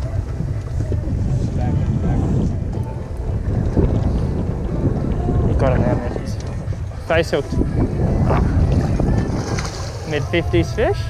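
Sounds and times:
faint voices: 0.0s - 11.0s
wind buffeting microphone: 0.0s - 11.0s.

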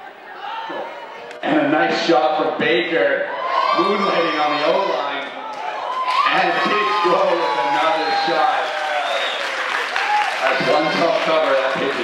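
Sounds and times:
people shouting and cheering: 0.0s - 1.4s, 2.9s - 12.0s.

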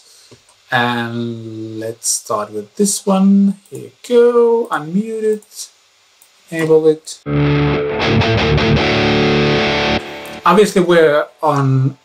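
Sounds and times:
distorted electric guitar: 7.2s - 10.7s.

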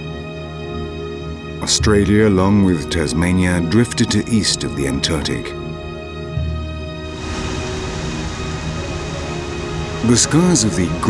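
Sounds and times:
background music: 0.0s - 11.0s
rushing rumbling noise: 7.0s - 11.0s.

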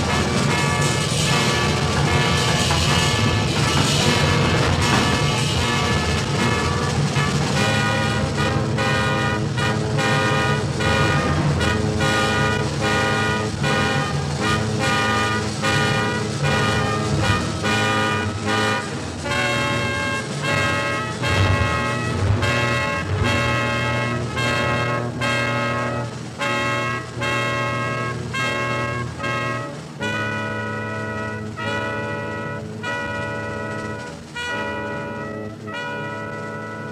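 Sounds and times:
brass and saxophone chords: 0.0s - 36.9s.

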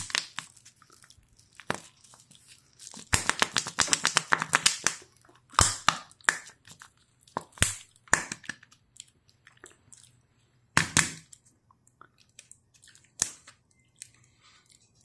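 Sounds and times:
wrapper crinkling and tearing: 0.0s - 5.9s.

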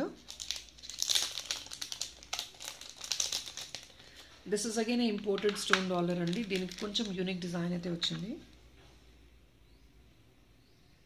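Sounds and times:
plastic packet crinkling: 0.2s - 8.4s.

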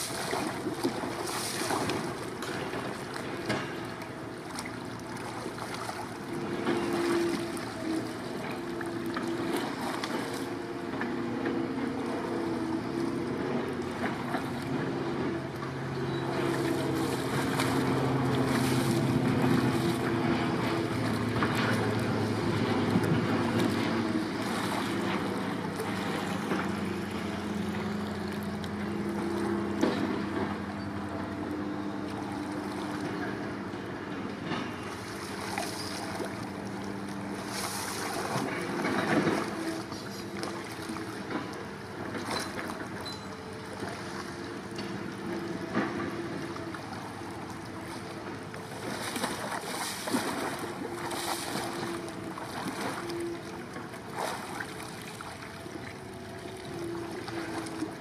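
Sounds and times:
paddle splashing in water: 0.0s - 31.3s, 34.2s - 58.0s
low droning hum: 0.0s - 58.0s.

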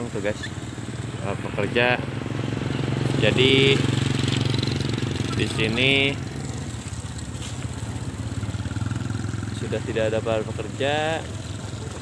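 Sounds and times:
small motorcycle engine running: 0.0s - 12.0s.

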